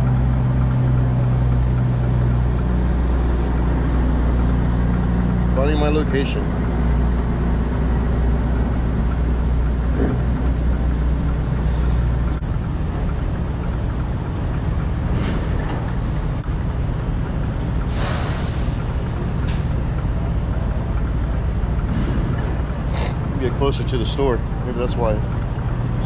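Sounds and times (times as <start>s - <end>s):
diesel truck engine running: 0.0s - 26.0s.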